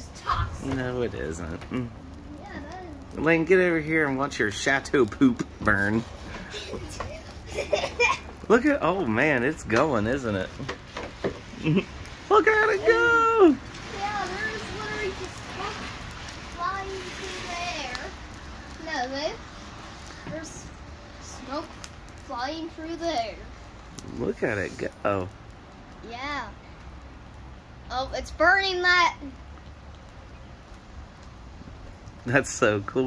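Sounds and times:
low background hiss: 0.0s - 33.0s
low rumble of fire: 0.0s - 33.0s.

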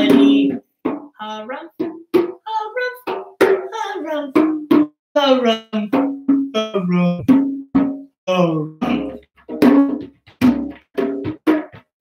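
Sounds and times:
man singing wordless melody: 5.2s - 7.5s, 8.3s - 9.3s
hand strikes on djembe: 8.9s - 12.0s.

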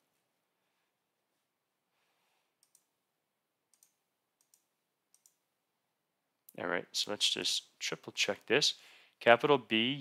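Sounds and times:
faint computer mouse clicks: 2.6s - 2.9s, 3.7s - 5.4s.

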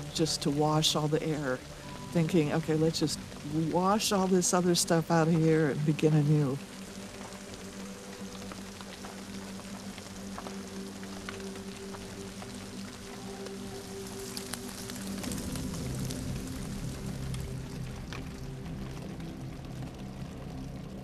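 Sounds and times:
rain falling on foliage: 0.0s - 21.0s.

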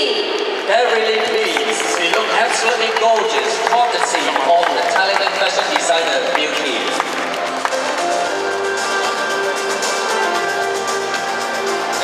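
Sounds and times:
voices: 0.0s - 7.0s
audience applauding: 0.6s - 10.0s.

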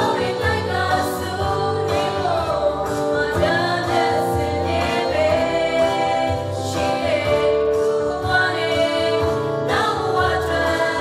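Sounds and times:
choir singing a hymn: 0.0s - 11.0s.

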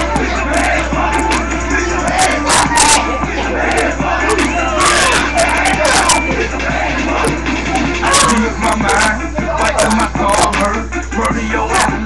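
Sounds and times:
young people shouting: 0.0s - 10.6s
rap music: 0.0s - 12.0s.

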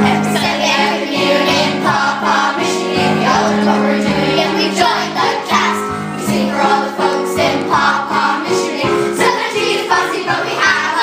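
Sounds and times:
children singing: 0.0s - 11.0s
musical accompaniment: 0.0s - 11.0s.

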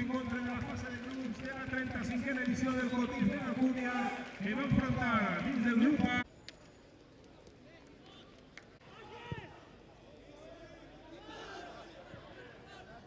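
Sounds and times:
stadium background noise: 0.0s - 13.0s.

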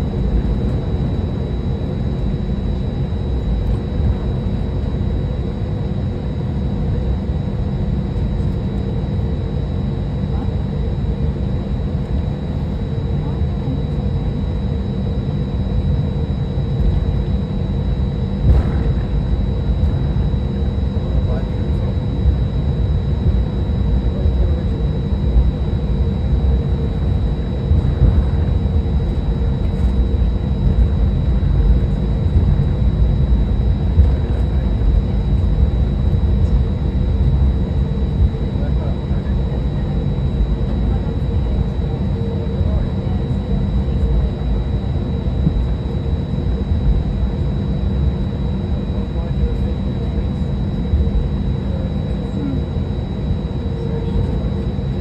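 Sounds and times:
faint high whine: 0.0s - 55.0s
jet engines low rumble: 0.0s - 55.0s
steady hum: 0.0s - 55.0s.

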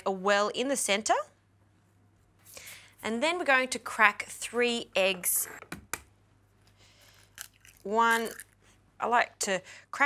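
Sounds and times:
eggshell cracking on bowl rim: 7.2s - 8.6s.

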